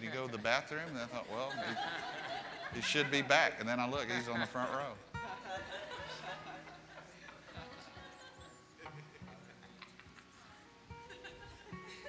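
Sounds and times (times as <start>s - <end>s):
soft keyboard music: 2.7s - 12.0s.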